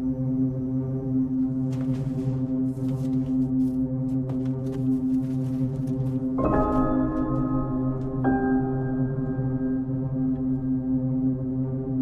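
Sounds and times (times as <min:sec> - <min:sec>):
low droning horror score: 0:00.0 - 0:12.0.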